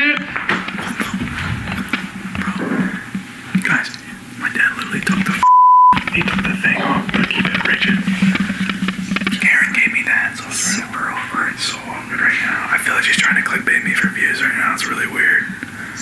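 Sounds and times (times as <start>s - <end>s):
censor bleep: 5.4s - 6.0s
men talking: 6.0s - 15.6s.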